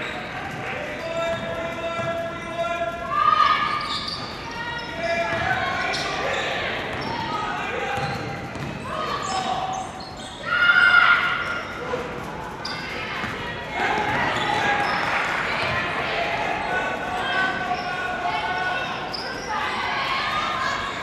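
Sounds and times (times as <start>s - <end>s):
people shouting in a large hall: 0.0s - 21.0s
basketball bouncing on hardwood floor: 8.0s - 8.8s.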